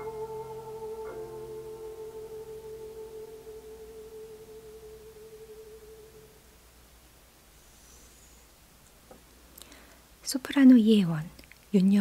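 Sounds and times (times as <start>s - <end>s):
held chord with wavering pulse: 0.0s - 6.4s
soft note: 0.0s - 6.4s.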